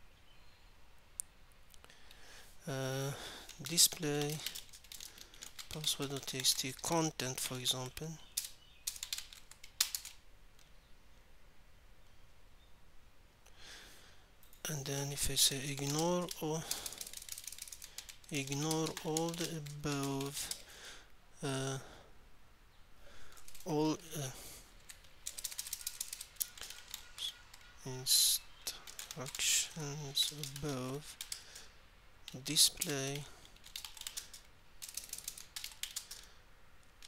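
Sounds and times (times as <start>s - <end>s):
typing on computer keyboard: 3.5s - 10.2s, 15.1s - 20.7s, 23.4s - 23.7s, 24.8s - 27.7s, 28.8s - 29.5s, 30.1s - 31.5s, 32.3s - 36.3s.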